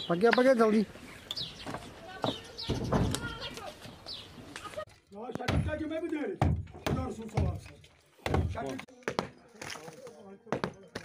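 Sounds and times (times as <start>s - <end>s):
men talking: 0.0s - 1.0s, 5.1s - 8.9s
bird chirps: 1.0s - 4.4s.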